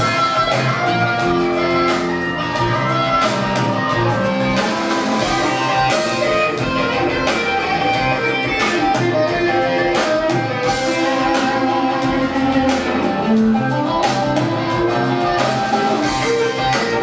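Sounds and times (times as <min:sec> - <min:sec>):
electric guitar picking tune: 0:00.0 - 0:17.0
electric mandolin picking tune: 0:00.0 - 0:17.0
steady drum beat: 0:00.0 - 0:17.0.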